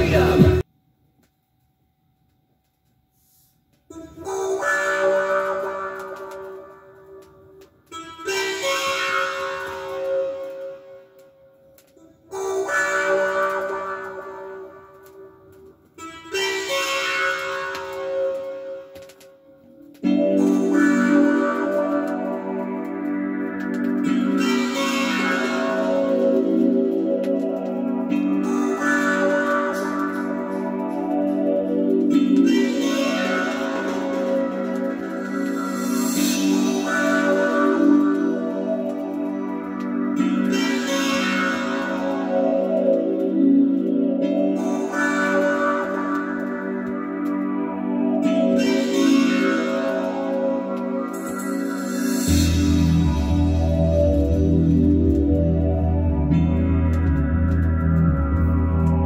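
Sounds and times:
music from vinyl record: 0.0s - 0.7s, 3.3s - 59.0s.

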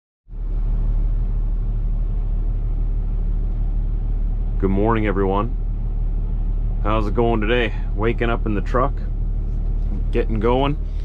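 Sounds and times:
diesel truck engine idling: 0.3s - 11.0s.

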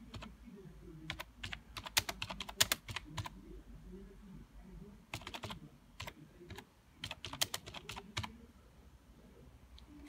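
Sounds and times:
typing on computer keyboard: 0.1s - 0.3s, 1.1s - 3.3s, 5.1s - 8.3s.

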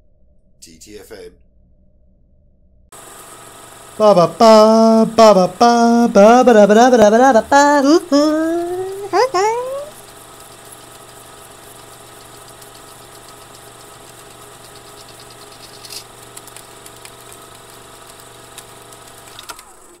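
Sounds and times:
droning hum of held tones: 0.0s - 19.8s.

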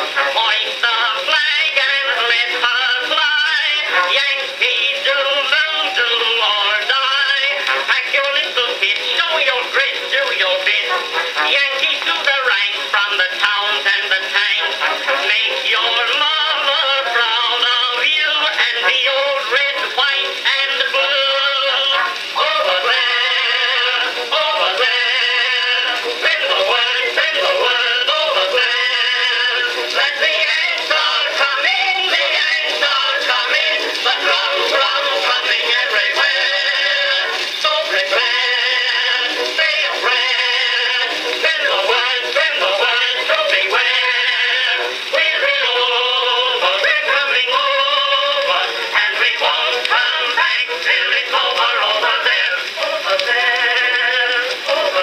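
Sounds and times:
phonograph playing man and chorus singing: 0.0s - 55.0s.

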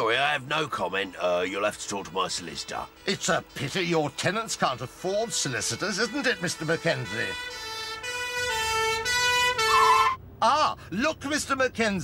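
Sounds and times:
police siren: 5.8s - 10.2s.

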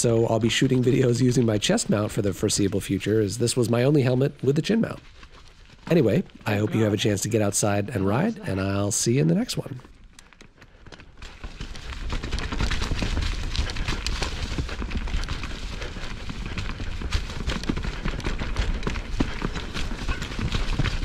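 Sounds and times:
bike tyres clattering over rocks: 9.6s - 21.0s.

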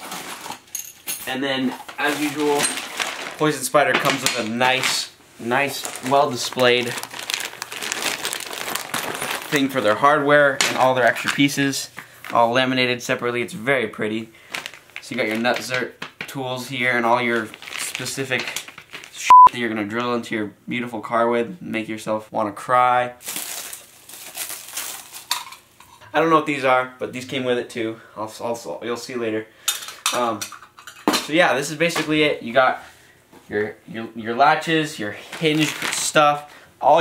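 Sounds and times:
plastic packaging crinkling: 1.7s - 10.1s, 14.4s - 16.0s, 16.6s - 19.3s, 23.2s - 25.6s, 35.2s - 36.2s.

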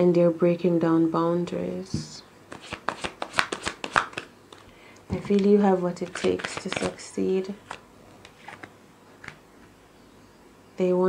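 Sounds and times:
deck of cards shuffling: 2.0s - 9.4s.

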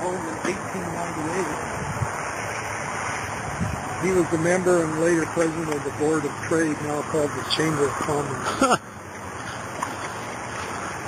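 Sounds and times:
steady rushing outdoor noise: 0.0s - 11.0s.

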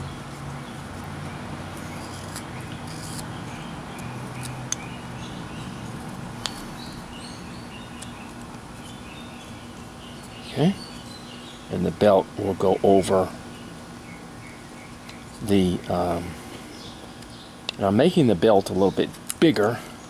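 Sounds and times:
knife carving wood: 1.0s - 4.9s.

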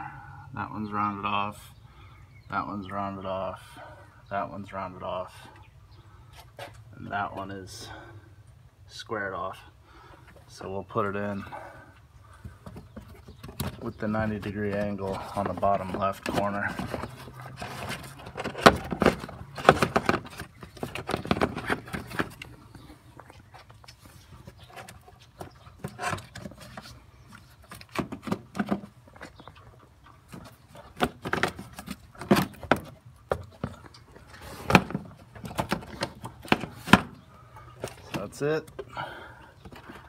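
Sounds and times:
plastic knocks and rattles: 12.6s - 22.5s, 30.3s - 37.2s.

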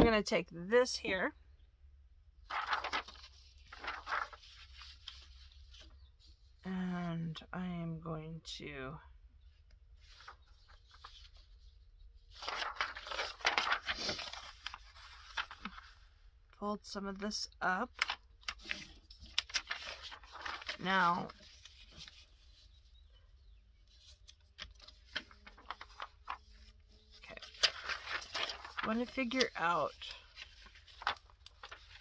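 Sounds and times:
paper rustling: 2.4s - 6.3s, 10.0s - 16.1s, 17.9s - 23.0s, 23.8s - 32.0s.

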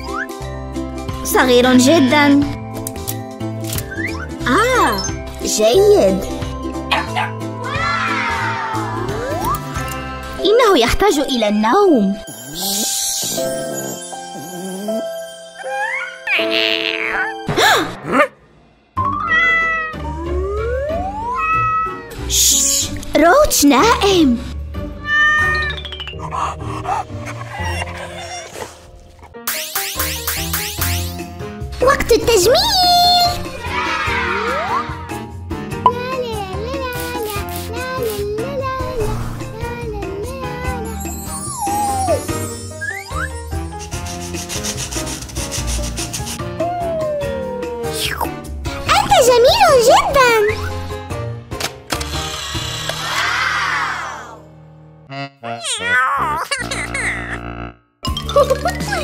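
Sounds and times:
upbeat background music: 0.0s - 18.2s, 18.9s - 53.3s, 55.1s - 59.0s
puppy sounds: 25.3s - 29.4s.

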